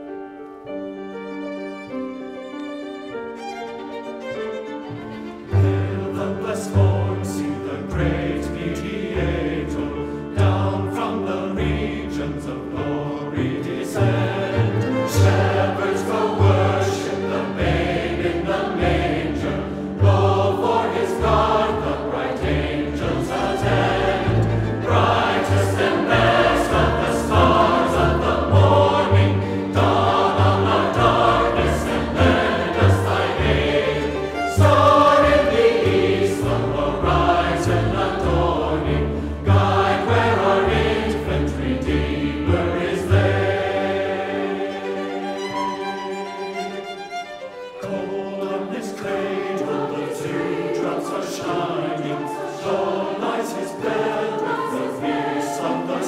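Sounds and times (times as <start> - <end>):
strings: 0.0 - 56.0
mixed choir singing: 5.2 - 46.6, 47.5 - 56.0.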